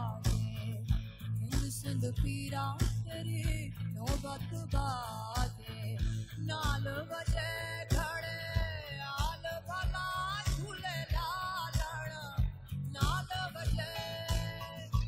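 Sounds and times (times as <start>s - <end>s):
guitar and bass: 0.0s - 15.0s
person singing: 0.0s - 15.0s
steady drum beat: 0.0s - 15.0s.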